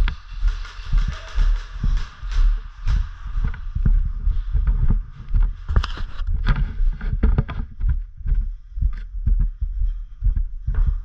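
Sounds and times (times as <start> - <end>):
footsteps on gritty floor: 0.0 - 11.0.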